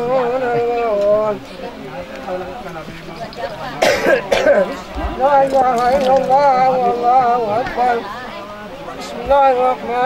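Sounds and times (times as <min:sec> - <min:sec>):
man coughing: 0:03.8 - 0:04.7.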